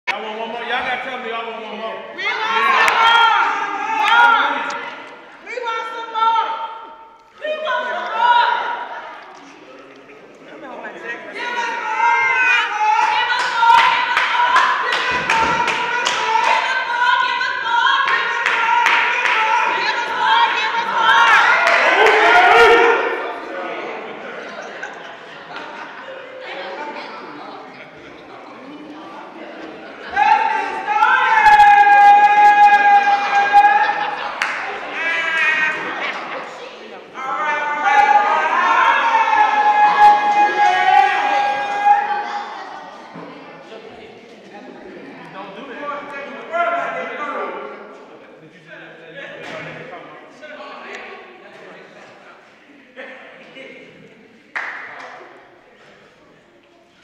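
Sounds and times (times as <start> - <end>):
people calling out in a hall: 0.1 - 57.0.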